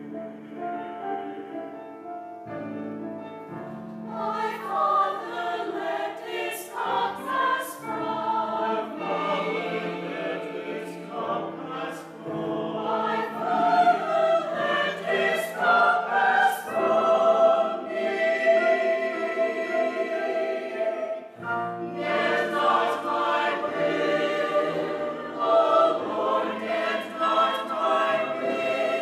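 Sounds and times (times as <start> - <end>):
mixed choir singing: 0.0 - 2.0, 4.0 - 29.0.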